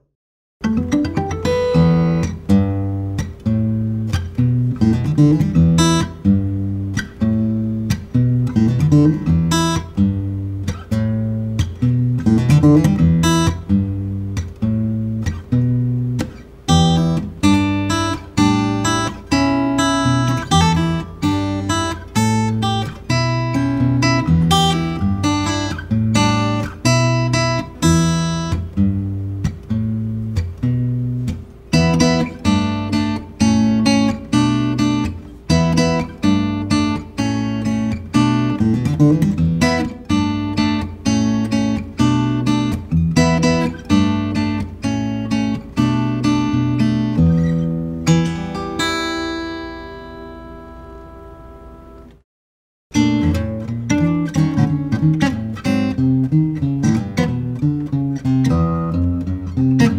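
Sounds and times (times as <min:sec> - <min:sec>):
acoustic guitar strumming chords: 0:00.6 - 0:52.2, 0:52.9 - 0:59.9.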